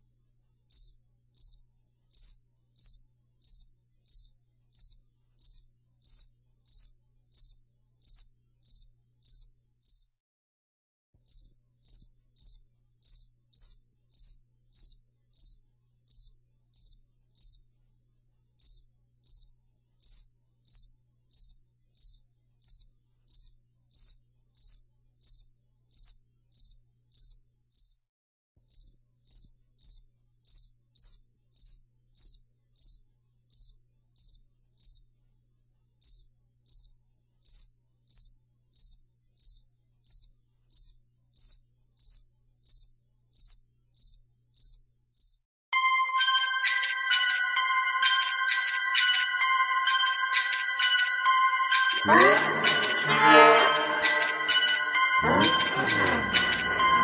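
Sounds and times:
cricket chirping: 0.7s - 10.1s, 11.3s - 17.7s, 18.6s - 28.0s, 28.7s - 35.1s, 36.0s - 45.4s.

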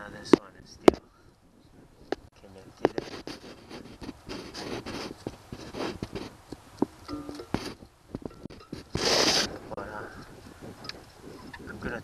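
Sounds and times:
rustling: 2.0s - 11.6s.

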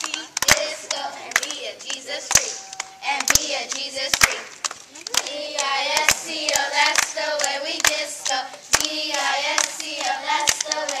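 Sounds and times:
girls singing together: 0.0s - 11.0s
sharp hand claps: 0.0s - 11.0s.

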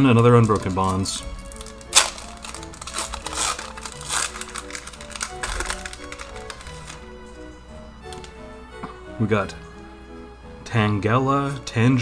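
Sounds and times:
foil wrapper crinkling and tearing: 0.0s - 7.4s
background music: 0.0s - 12.0s.

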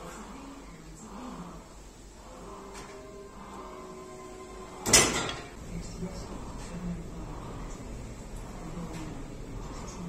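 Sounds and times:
weight stack clanking down: 4.8s - 5.6s.

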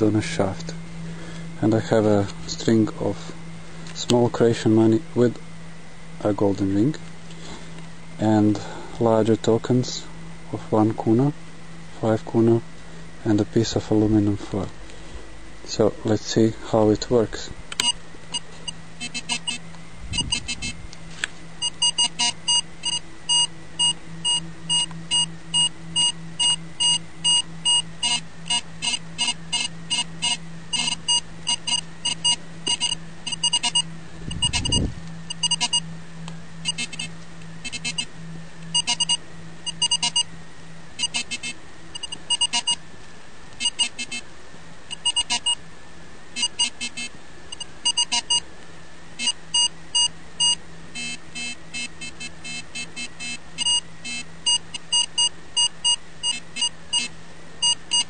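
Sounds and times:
metal detector beeps: 17.8s - 19.6s, 20.2s - 20.8s, 21.6s - 35.8s, 36.6s - 38.1s, 38.7s - 40.3s, 41.0s - 42.8s, 43.6s - 44.2s, 44.9s - 45.6s, 46.4s - 48.4s, 49.2s - 58.0s.

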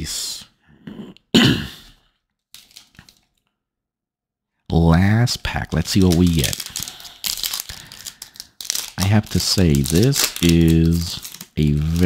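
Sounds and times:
foil wrapper tearing and crinkling: 2.5s - 3.3s, 5.8s - 12.0s.

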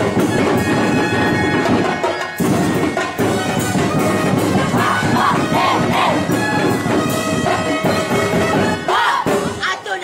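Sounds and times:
street-dance music: 0.0s - 10.0s
group shouting together: 4.8s - 6.4s, 8.9s - 9.4s.

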